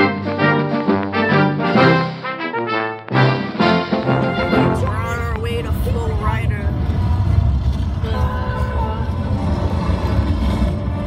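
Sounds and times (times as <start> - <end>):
car road and engine rumble: 4.8 - 11.0.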